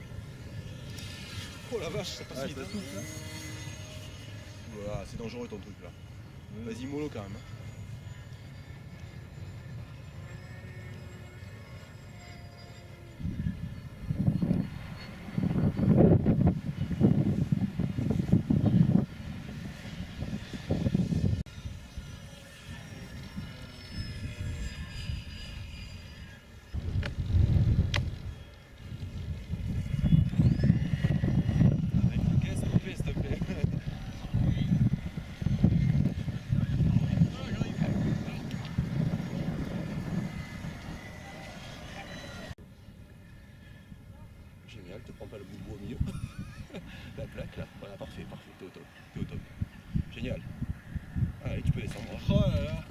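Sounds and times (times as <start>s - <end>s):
model plane motor whine: 0.0s - 52.9s
wind gusting on microphone: 0.0s - 52.9s.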